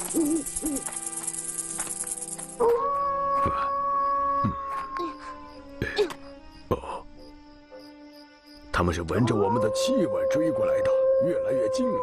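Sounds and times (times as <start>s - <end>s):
background music: 0.0s - 12.0s
wolf howl: 2.6s - 5.2s, 9.1s - 12.0s.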